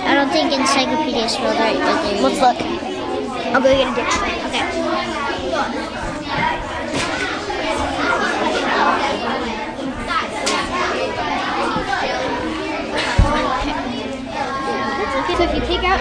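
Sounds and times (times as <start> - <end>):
children chattering: 0.0 - 16.0.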